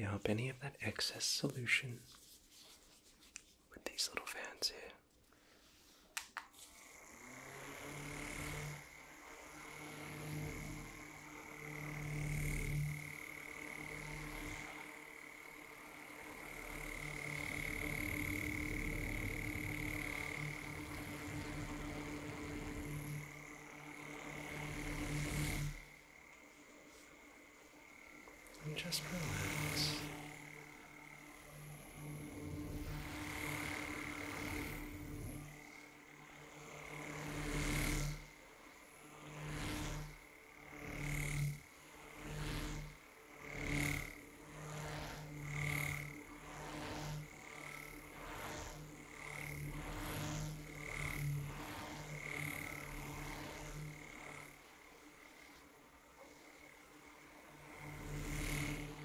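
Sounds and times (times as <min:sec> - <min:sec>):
handheld electric fans whining: 0:06.2 - 0:59.0.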